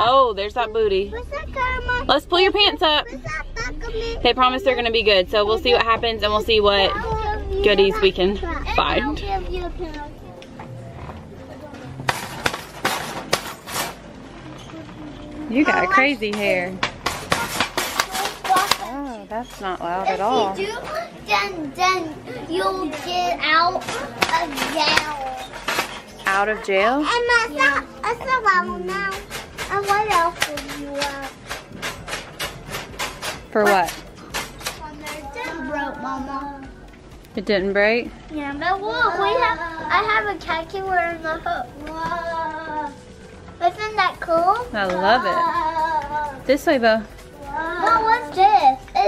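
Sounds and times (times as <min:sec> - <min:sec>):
boy's wavering vocal sound: 0:03.1 - 0:04.2
shopping cart rattling: 0:11.8 - 0:19.6, 0:22.5 - 0:35.9, 0:38.6 - 0:49.0.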